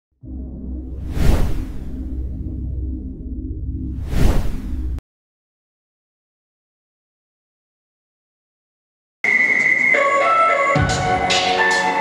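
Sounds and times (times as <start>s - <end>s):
deep droning bass: 0.1s - 5.0s
loud whoosh: 0.3s - 5.0s.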